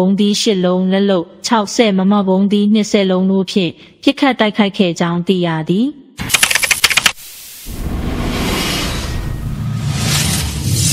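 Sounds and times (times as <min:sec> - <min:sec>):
sharp typewriter-like clicks: 0:06.2 - 0:07.2.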